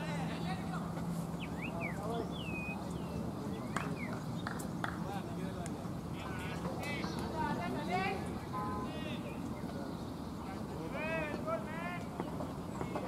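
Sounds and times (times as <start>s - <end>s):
low murmur of voices: 0.0s - 13.0s.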